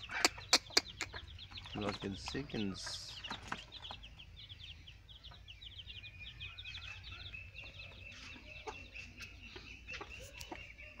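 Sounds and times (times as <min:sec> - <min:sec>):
ducklings peeping: 0:00.0 - 0:11.0.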